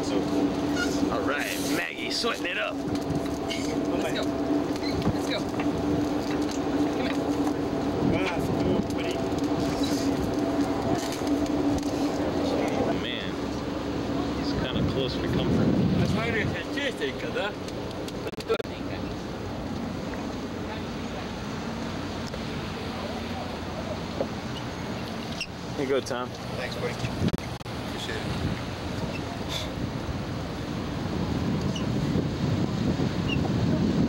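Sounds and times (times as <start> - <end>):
steady mechanical hum: 0.0 - 34.0.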